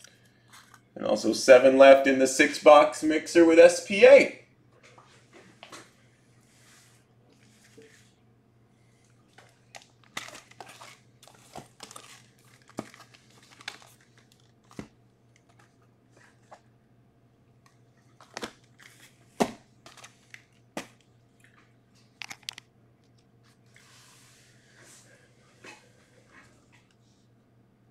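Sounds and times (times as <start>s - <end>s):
plastic wrap crinkling: 9.3s - 16.4s.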